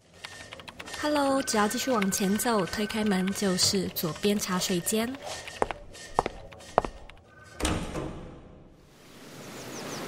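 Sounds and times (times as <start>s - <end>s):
sharp footsteps: 3.0s - 7.3s.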